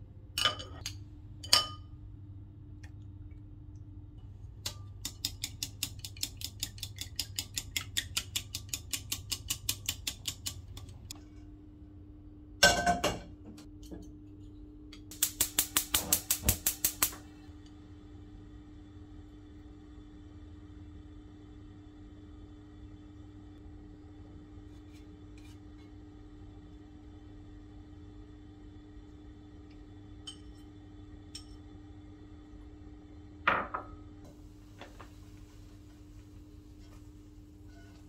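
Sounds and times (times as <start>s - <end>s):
faint steady hum: 0.0s - 8.9s, 9.8s - 38.0s
gas hob igniter clicking: 15.1s - 17.3s.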